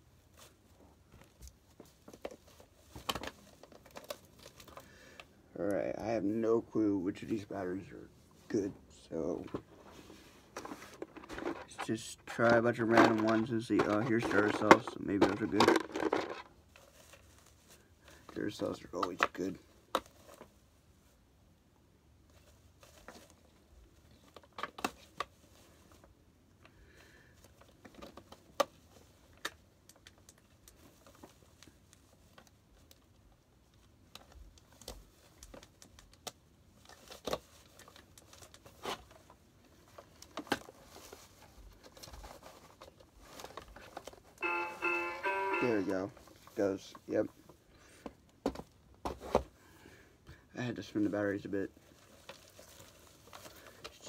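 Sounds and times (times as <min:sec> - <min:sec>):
plastic parts clicking and knocking: 0:10.6 - 0:16.5
toy speaker music burst: 0:44.4 - 0:45.9.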